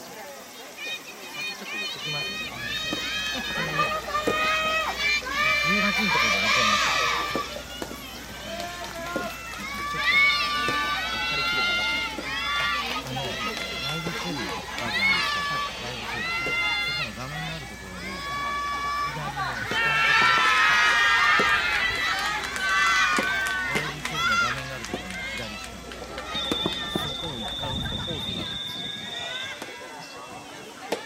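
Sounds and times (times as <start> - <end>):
girls shouting drawn-out calls: 0.7 - 24.5.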